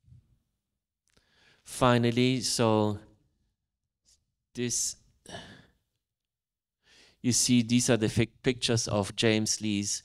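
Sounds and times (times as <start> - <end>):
faint in-breath: 1.1 - 1.7, 6.8 - 7.2
man sighing: 5.3 - 5.7.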